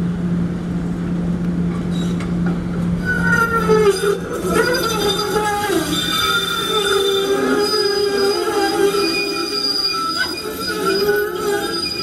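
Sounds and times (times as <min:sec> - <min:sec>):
trolley wheels squealing on curve: 0:03.0 - 0:12.0.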